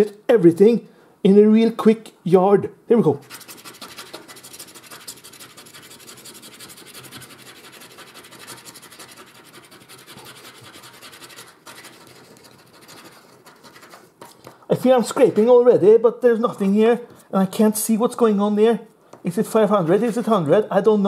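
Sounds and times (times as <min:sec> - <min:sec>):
coin scratching lottery card: 0:03.2 - 0:14.5.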